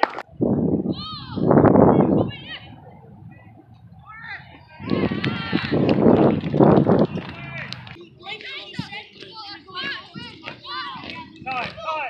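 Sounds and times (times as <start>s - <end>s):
crowd cheering and shouting: 4.3s - 8.0s.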